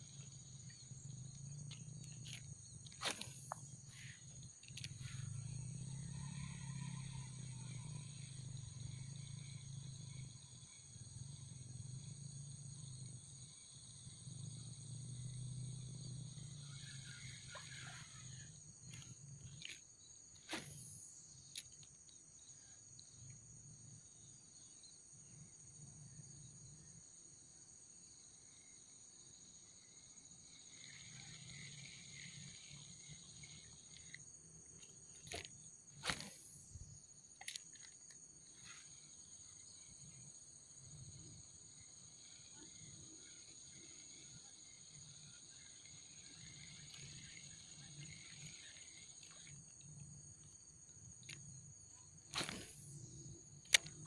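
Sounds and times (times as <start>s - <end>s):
high-pitched insect chorus: 0.0s - 54.0s.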